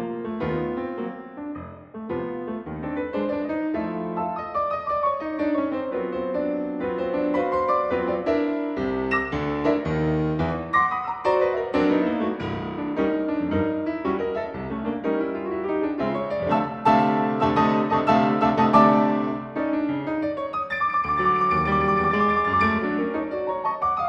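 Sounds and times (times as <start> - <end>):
ragtime piano: 0.0 - 24.0.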